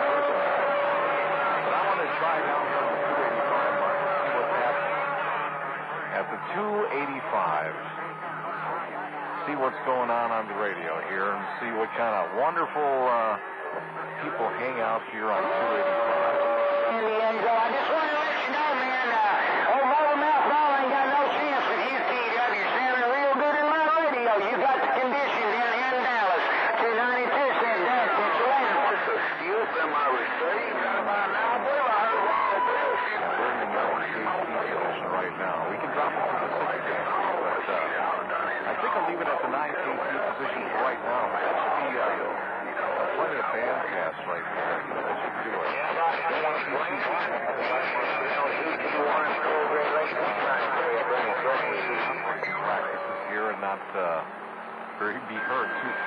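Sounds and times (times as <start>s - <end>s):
garbled radio voices: 0.0s - 56.0s.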